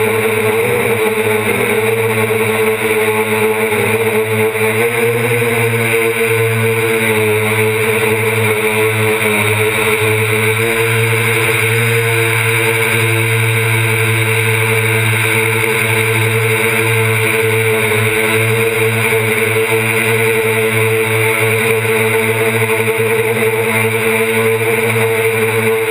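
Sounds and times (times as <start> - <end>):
drone propellers buzzing: 0.0 - 25.9.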